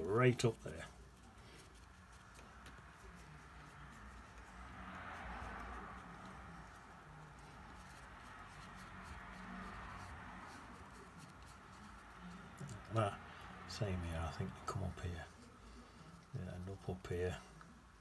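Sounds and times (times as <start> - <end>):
paintbrush scratching on paper: 0.0 - 18.0.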